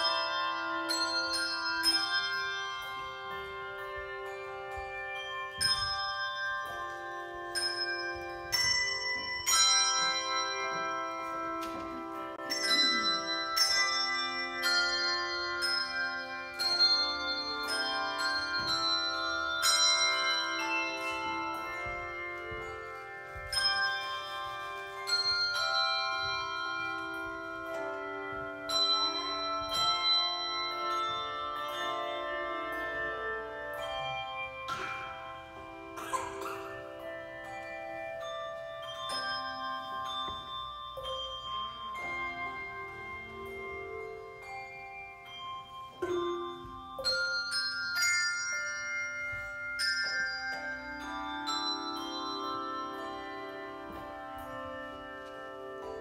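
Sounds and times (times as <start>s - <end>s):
handbell choir ringing: 0.0s - 56.0s.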